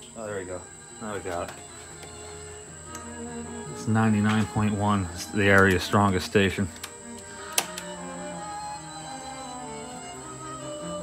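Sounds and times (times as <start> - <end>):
radio music through speaker: 3.7 - 6.9
sharp click: 6.8 - 7.9.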